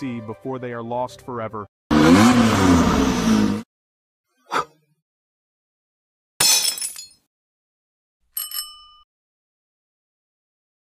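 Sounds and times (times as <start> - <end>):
bell dings: 8.4 - 9.1
bright clink: 8.4 - 9.1.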